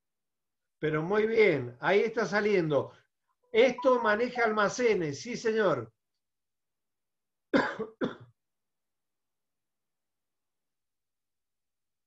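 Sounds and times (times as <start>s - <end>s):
person coughing: 7.5s - 8.4s.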